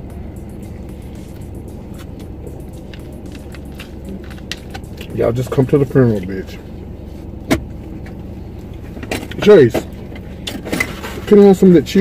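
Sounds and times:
faint music: 0.0 - 10.4
car engine idling: 0.0 - 12.0.

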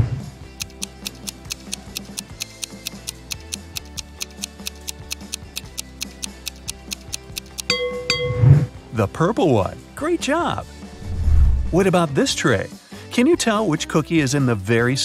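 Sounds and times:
soft background music: 0.0 - 15.0
countdown timer ticking: 0.5 - 8.6
bell-like chime: 7.7 - 8.7.

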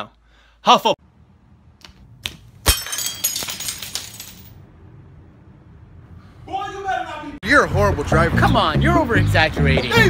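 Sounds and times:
glass shattering: 2.6 - 4.6
glass shards tinkling: 2.7 - 4.5.

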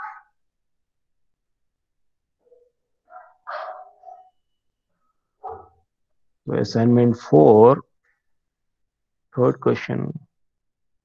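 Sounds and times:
distant dog barking: 0.0 - 0.4, 2.4 - 4.4, 5.4 - 5.9.

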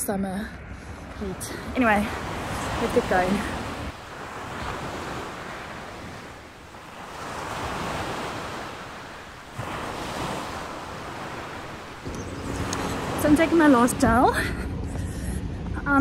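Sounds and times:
wind: 0.0 - 16.0
ocean surf breaking: 0.8 - 14.4.

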